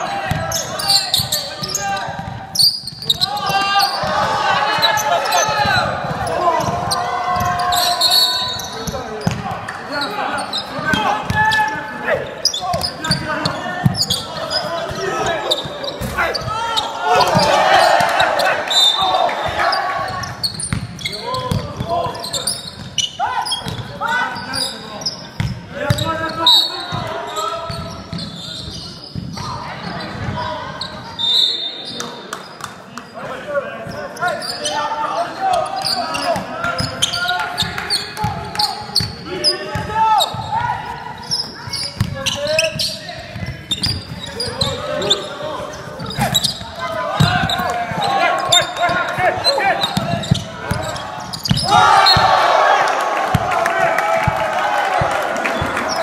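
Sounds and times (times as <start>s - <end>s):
basketball bouncing on court: 0.2s - 7.9s, 8.6s - 9.6s, 10.5s - 11.6s, 12.6s - 16.6s, 17.2s - 17.7s, 19.4s - 24.0s, 25.4s - 26.1s, 26.9s - 29.4s, 36.3s - 44.9s, 45.6s - 52.4s, 53.3s - 53.6s.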